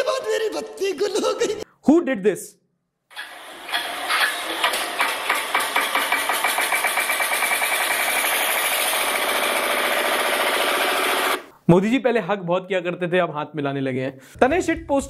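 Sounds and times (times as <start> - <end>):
engine cranking and puttering: 3.7 - 10.5.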